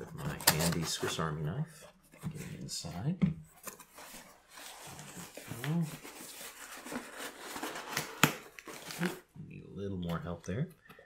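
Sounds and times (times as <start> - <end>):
cardboard scraping and rustling: 3.5 - 9.2.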